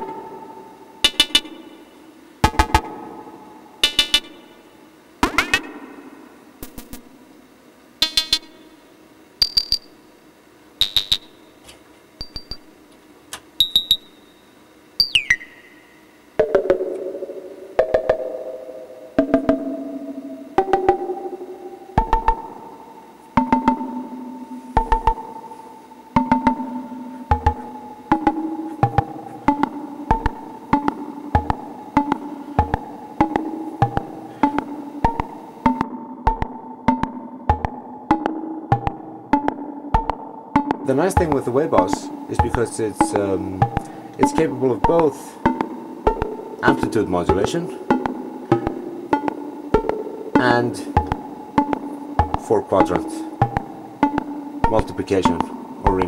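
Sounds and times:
synthesizer percussive notes: 0:00.0 - 0:07.2, 0:08.0 - 0:08.8, 0:09.4 - 0:10.0, 0:10.8 - 0:11.6, 0:12.2 - 0:12.8, 0:13.6 - 0:14.4, 0:15.0 - 0:25.4, 0:26.1 - 0:56.0.

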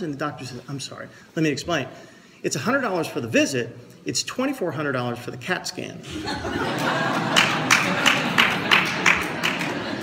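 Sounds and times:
audience laughing: 0:06.0 - 0:10.0
sharp claps: 0:07.2 - 0:10.0.

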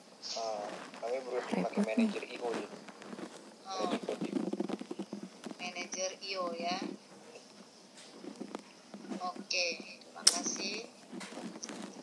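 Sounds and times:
person's voice: 0:00.4 - 0:02.6.

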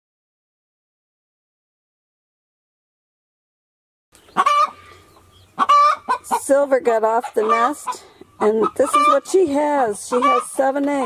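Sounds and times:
hen calling: 0:04.2 - 0:11.0.

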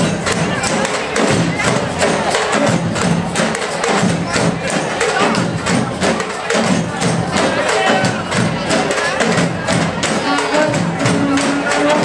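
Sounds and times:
bass drum beats: 0:00.0 - 0:12.0
stick strokes on small drums: 0:00.0 - 0:12.0.

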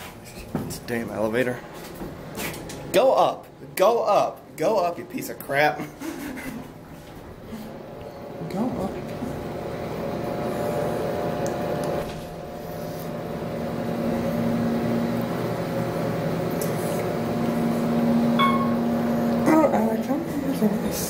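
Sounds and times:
elevator machinery hum: 0:06.6 - 0:21.0
short electronic chime: 0:18.4 - 0:18.9.

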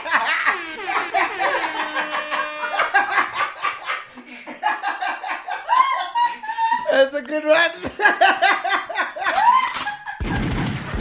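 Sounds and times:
men laughing: 0:00.0 - 0:10.3.

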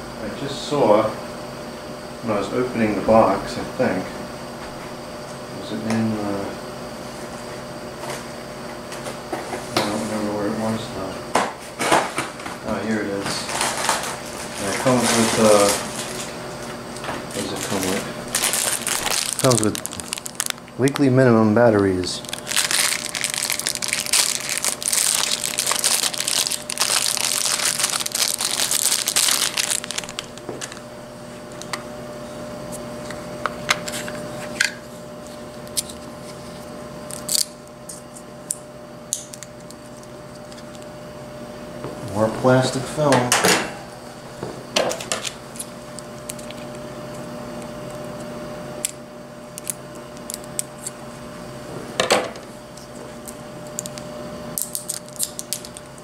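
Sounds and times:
plastic packaging crinkling: 0:17.3 - 0:21.2, 0:22.0 - 0:30.8, 0:54.6 - 0:56.0.

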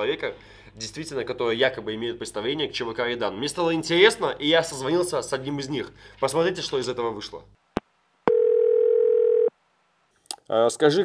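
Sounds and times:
telephone ringback beep: 0:08.3 - 0:09.5.

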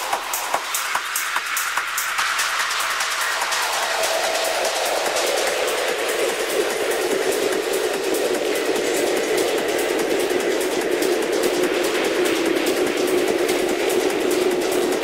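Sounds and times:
fast fine ticking: 0:04.0 - 0:15.0.

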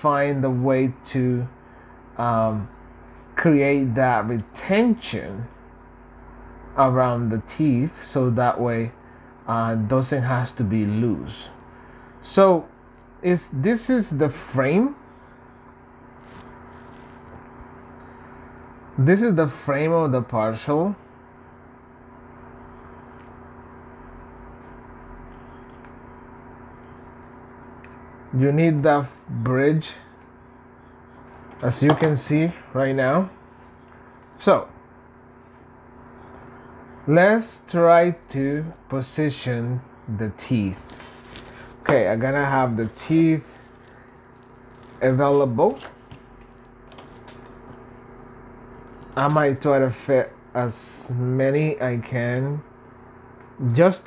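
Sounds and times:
electrical machine hum: 0:00.0 - 0:54.0.

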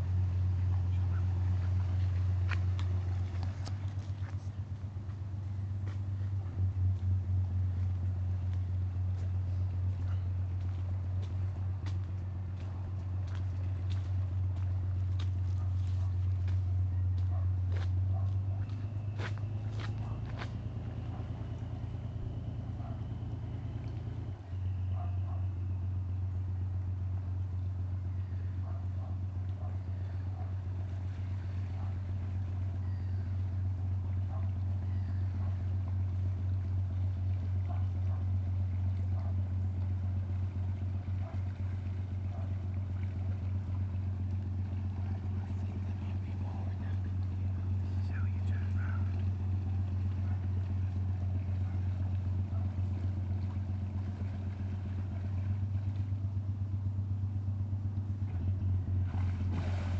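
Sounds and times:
diesel engine drone: 0:00.0 - 0:59.9.

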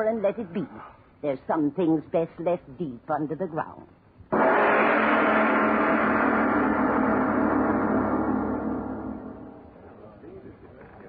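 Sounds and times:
gong stroke ringing: 0:04.4 - 0:10.1.

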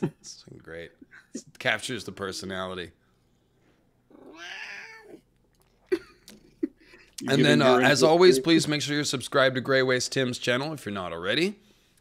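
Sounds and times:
cat meowing: 0:04.1 - 0:05.2.

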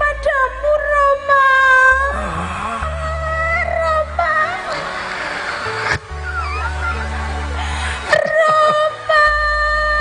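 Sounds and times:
steady low musical tone: 0:00.0 - 0:10.0.

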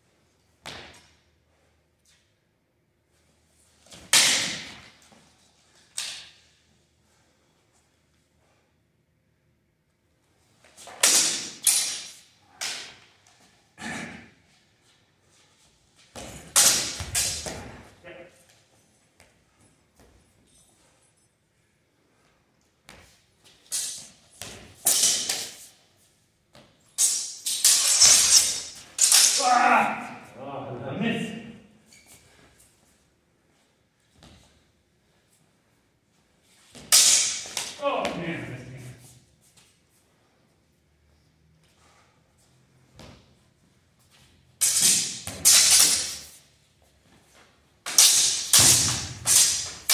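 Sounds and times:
training swords clashing: 0:03.8 - 0:05.2, 0:05.8 - 0:06.7, 0:10.6 - 0:14.6, 0:16.0 - 0:18.6, 0:23.5 - 0:25.9, 0:26.8 - 0:31.3, 0:36.7 - 0:39.0, 0:44.6 - 0:46.5, 0:47.8 - 0:49.9
loud sword hit: 0:04.1 - 0:04.8, 0:11.0 - 0:12.9, 0:27.0 - 0:29.8, 0:36.8 - 0:37.8, 0:44.6 - 0:46.2, 0:47.9 - 0:49.9
person calling out: 0:29.4 - 0:31.0, 0:37.8 - 0:38.7.

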